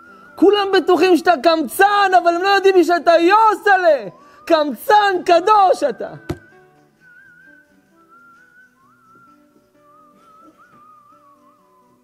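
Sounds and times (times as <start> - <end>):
soft whistling melody: 0.0 - 0.6, 4.1 - 12.0
sharp tap: 6.3 - 6.5.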